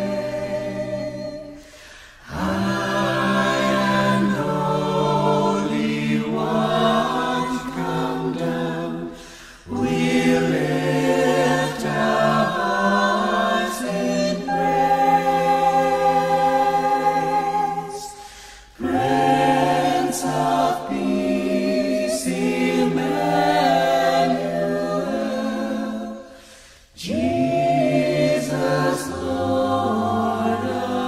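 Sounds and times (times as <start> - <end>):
ensemble singing a cappella: 0.0 - 31.0.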